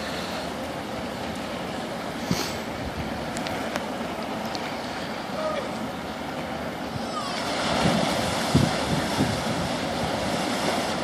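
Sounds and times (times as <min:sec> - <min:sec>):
ferry propeller wash churning water: 0:00.0 - 0:11.0.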